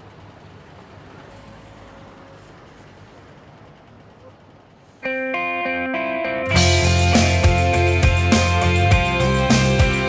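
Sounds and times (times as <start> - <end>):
distant city traffic hum: 0.0 - 10.0.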